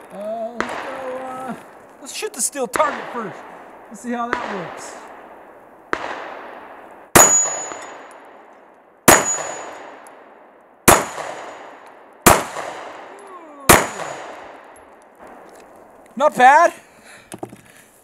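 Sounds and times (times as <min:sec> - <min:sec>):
pistol shots with echo: 0:00.0 - 0:01.8, 0:02.6 - 0:15.5
steel target ringing: 0:07.2 - 0:08.3, 0:09.1 - 0:10.0.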